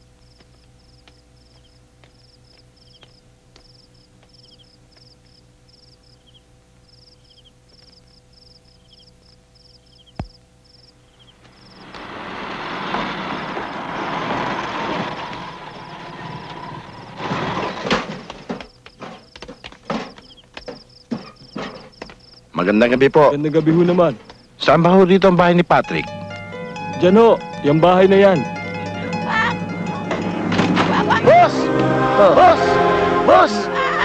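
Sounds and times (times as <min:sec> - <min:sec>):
insects chirping: 0:00.0 - 0:30.4
loud vehicle engine: 0:11.3 - 0:17.9, 0:26.0 - 0:33.3.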